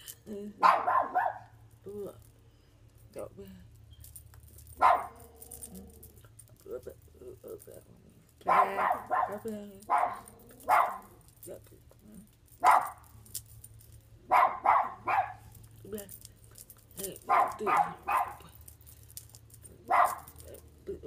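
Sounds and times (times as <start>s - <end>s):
dog barking: 0.6s - 1.5s, 4.8s - 5.3s, 8.4s - 11.1s, 12.6s - 13.0s, 14.3s - 15.5s, 17.3s - 18.5s, 19.9s - 20.4s.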